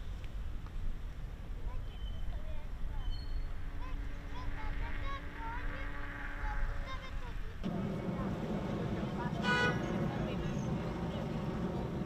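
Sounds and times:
chirp-like calls: 0:01.8 - 0:04.5
steady low hum: 0:03.3 - 0:12.0
dense low rumble: 0:07.6 - 0:12.0.

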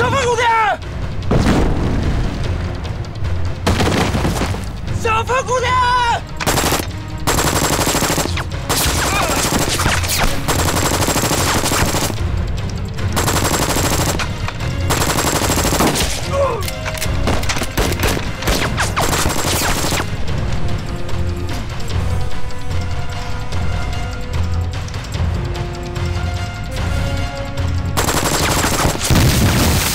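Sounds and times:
man shouting: 0:00.0 - 0:00.8, 0:05.0 - 0:06.3, 0:09.0 - 0:09.5, 0:16.3 - 0:16.7
machine-gun fire: 0:03.7 - 0:04.6, 0:06.4 - 0:12.2, 0:13.2 - 0:16.3, 0:17.3 - 0:20.1, 0:28.0 - 0:29.9.

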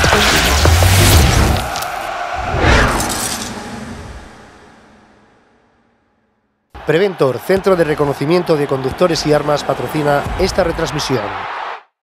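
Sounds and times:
sports graphics music: 0:00.0 - 0:02.0
whoosh sound effects: 0:00.1 - 0:05.2.

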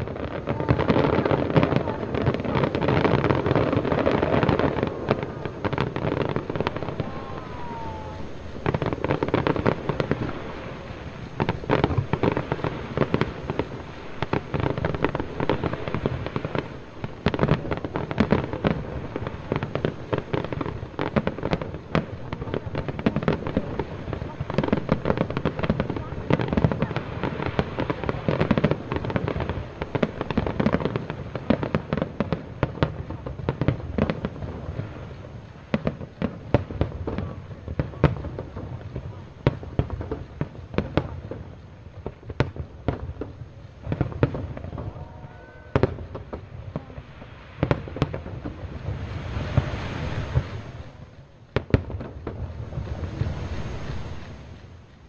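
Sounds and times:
fireworks bangs and crackles: 0:00.0 - 0:55.0.

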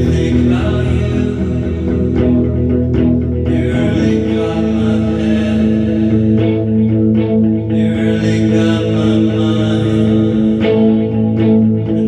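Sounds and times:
electric guitar chords: 0:00.0 - 0:12.0.

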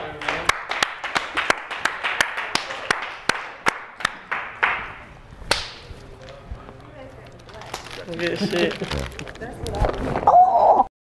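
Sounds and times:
person clapping hands: 0:00.2 - 0:05.8.

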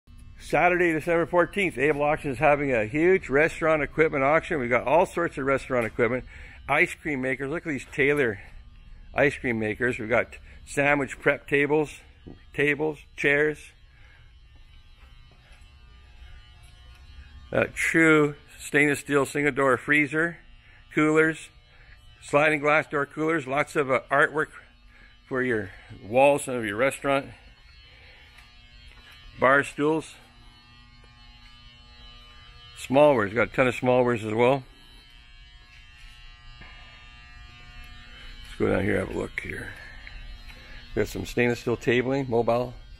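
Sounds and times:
faint low hum and buzz: 0:00.1 - 0:42.9.

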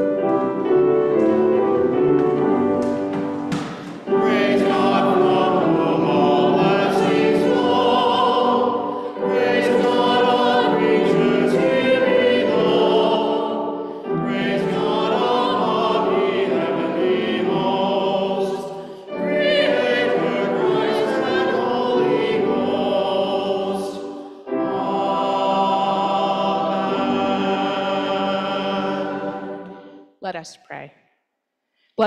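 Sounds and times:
grand piano accompaniment: 0:00.0 - 0:30.0
two voices singing with vibrato: 0:04.0 - 0:30.0.

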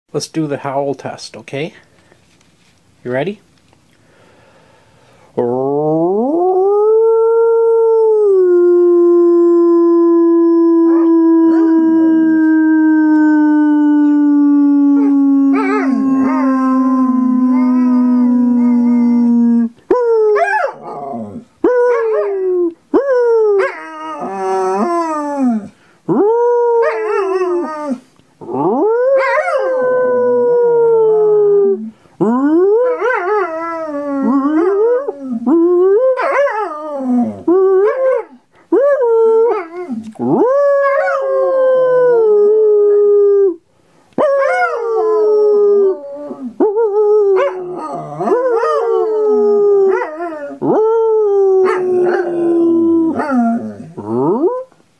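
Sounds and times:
person howling: 0:05.4 - 0:43.6, 0:44.2 - 0:54.6
dog howling: 0:06.0 - 0:43.6, 0:44.2 - 0:54.7.

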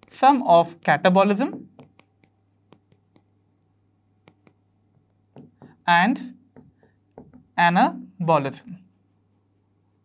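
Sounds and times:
marker writing on whiteboard: 0:00.0 - 0:10.0.

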